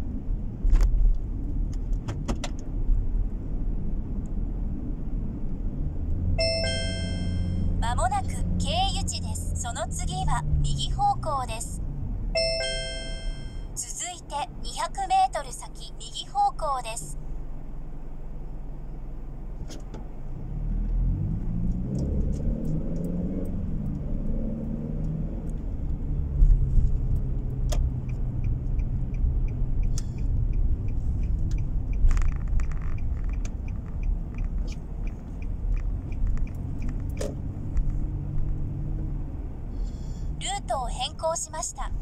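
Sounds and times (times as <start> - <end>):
car engine rumble: 0.0 - 42.0
turn signal relay ticking: 27.0 - 38.0.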